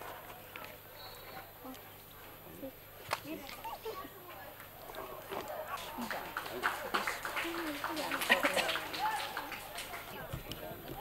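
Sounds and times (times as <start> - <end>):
outdoor chatter of voices: 0.0 - 11.0.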